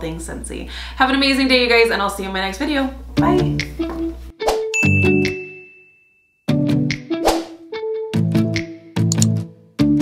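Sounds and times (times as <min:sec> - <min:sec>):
bright chime ding: 0:04.8 - 0:06.3.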